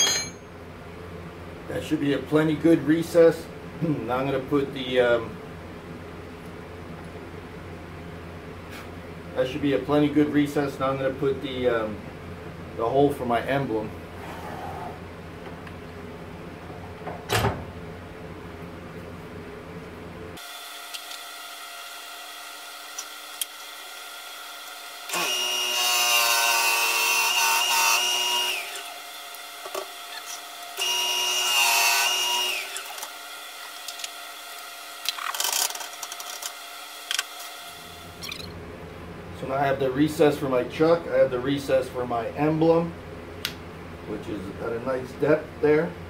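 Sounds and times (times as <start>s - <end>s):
drill bit boring into wood: 20.4s - 37.4s
wood lathe running: 20.4s - 37.8s.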